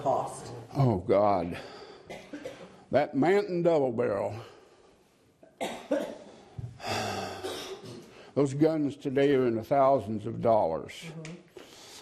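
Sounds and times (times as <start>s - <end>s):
person coughing: 2.1s - 2.8s, 5.5s - 8.1s.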